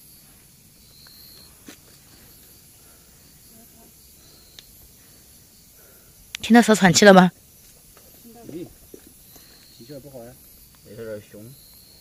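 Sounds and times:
snake hissing: 0.0 - 10.8
faint clicks: 4.5 - 4.7.

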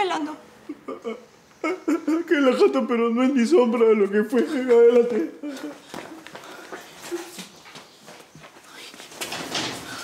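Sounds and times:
footsteps: 4.1 - 10.0.

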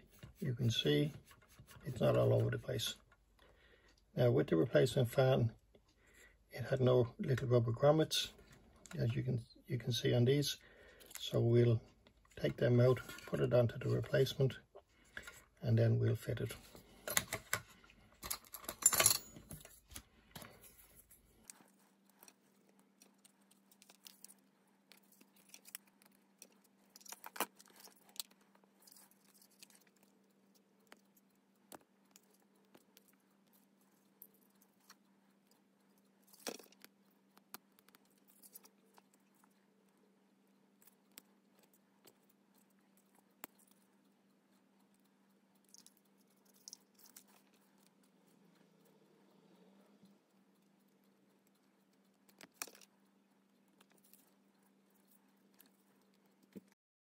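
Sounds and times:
faint steady hum: 0.0 - 56.8
faint clicks and taps: 19.4 - 56.8.

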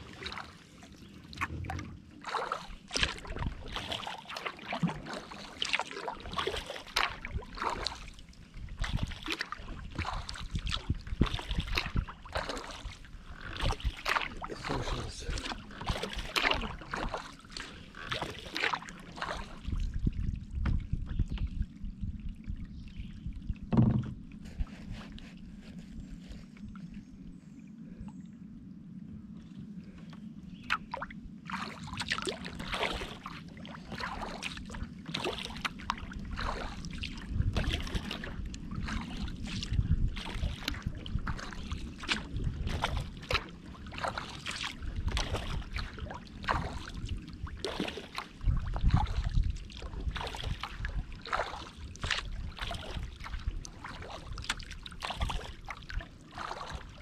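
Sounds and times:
low steady hum: 0.0 - 3.8, 21.6 - 40.1
kayak paddle splashing: 0.0 - 20.9, 29.9 - 57.0.

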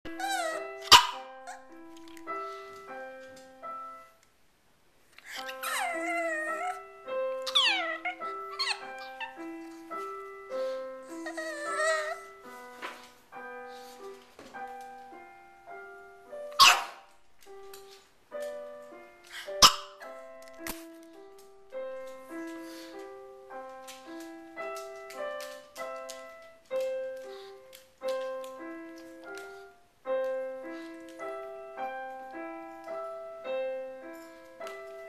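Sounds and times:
held piano notes: 0.0 - 35.0
dog whining: 0.1 - 1.8, 5.2 - 12.5
dog barking: 0.3 - 1.6, 16.6 - 17.1, 19.6 - 20.0.

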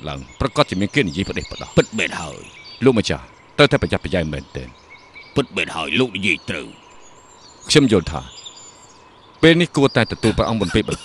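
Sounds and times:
person speaking: 0.0 - 4.7, 5.4 - 6.8, 7.7 - 8.3, 9.4 - 11.0
crickets chirping: 0.0 - 11.0.

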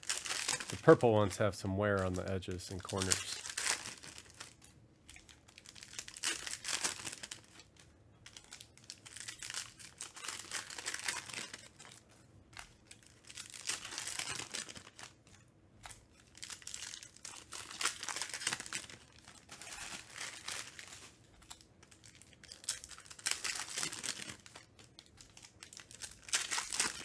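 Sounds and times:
foil wrappers tearing and crinkling: 0.0 - 27.0.

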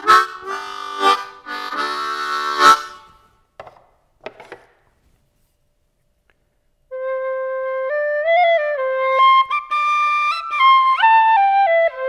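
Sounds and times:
harmonica chord: 0.0 - 3.3.

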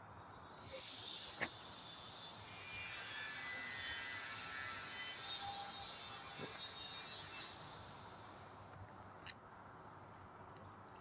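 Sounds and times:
high-pitched hiss with buzz: 0.0 - 8.7.

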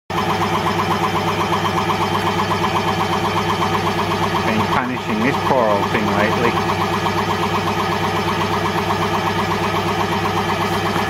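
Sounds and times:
air compressor running: 0.1 - 11.0.

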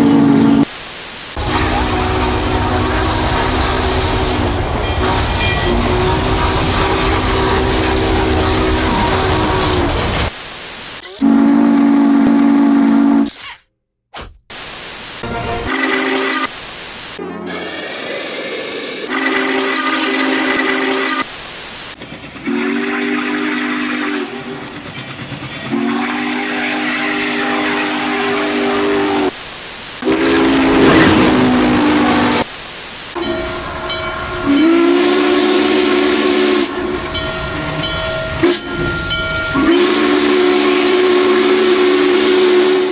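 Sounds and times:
steam hiss: 0.6 - 1.4, 14.5 - 20.0, 21.1 - 33.2
chime steam whistle blowing: 15.5 - 16.6, 19.0 - 21.3, 22.4 - 24.7, 25.7 - 29.3, 30.0 - 32.4, 33.2 - 42.9.

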